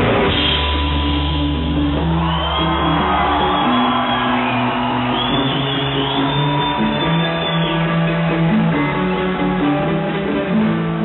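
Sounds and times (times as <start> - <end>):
bass guitar: 0.0 - 11.0
electric guitars: 0.0 - 11.0
live rock band playing: 0.0 - 11.0.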